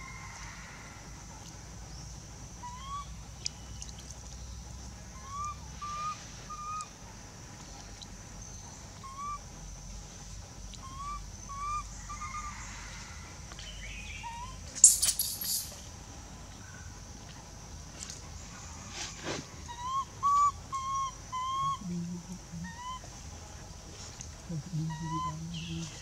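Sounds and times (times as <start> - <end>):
high insect drone: 4.4 - 26.0
baby monkey cooing: 10.8 - 12.5, 19.7 - 23.1, 24.5 - 26.0
rustling scuffle: 18.8 - 19.6.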